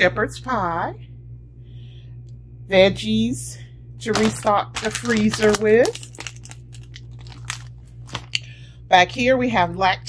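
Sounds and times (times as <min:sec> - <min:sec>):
steady low hum: 0:00.0 - 0:10.0
plastic bag crackling: 0:04.1 - 0:08.4.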